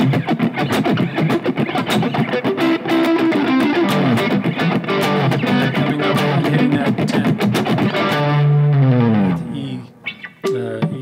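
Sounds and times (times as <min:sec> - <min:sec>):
muted electric guitar strums: 0:00.0 - 0:11.0.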